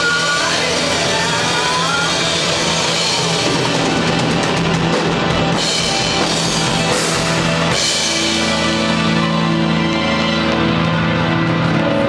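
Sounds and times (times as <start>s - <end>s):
distorted electric guitars: 0.0s - 12.0s
drum kit: 0.0s - 12.0s.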